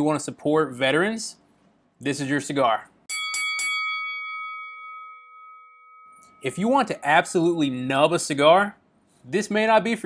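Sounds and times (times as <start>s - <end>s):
boxing ring bell ringing: 3.1s - 8.2s.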